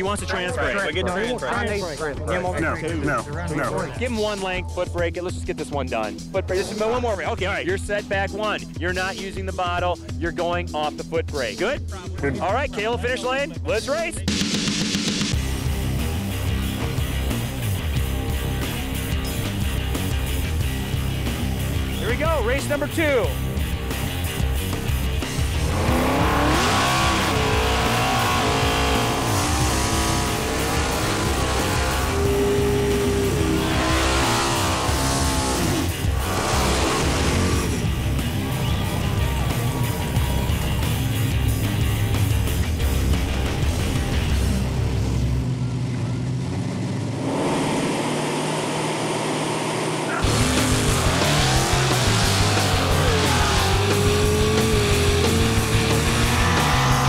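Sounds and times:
rock music: 0.0s - 46.4s, 49.2s - 57.0s
drag car engines revving: 14.5s - 57.0s.

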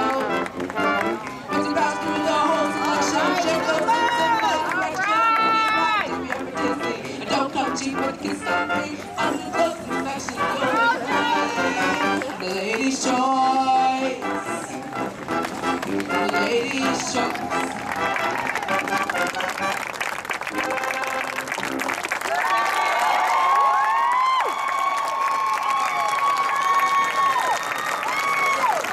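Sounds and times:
crowd clapping: 0.0s - 7.9s, 10.1s - 28.9s
marching band playing: 0.0s - 22.5s
crowd cheering and shouting: 1.0s - 6.3s, 10.4s - 15.3s, 16.0s - 19.7s, 22.2s - 28.9s.

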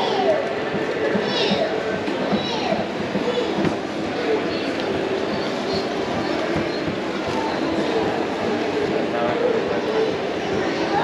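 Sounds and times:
indoor crowd hubbub: 0.0s - 11.0s.

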